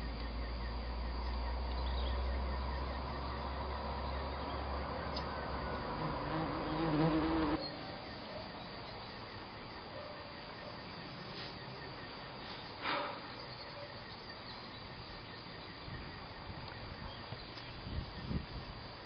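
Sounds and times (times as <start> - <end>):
faint high buzzing: 5.1 - 7.6.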